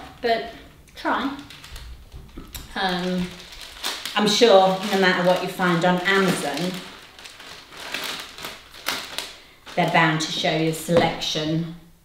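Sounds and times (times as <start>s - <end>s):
plastic packet crinkling: 1.2s - 10.9s.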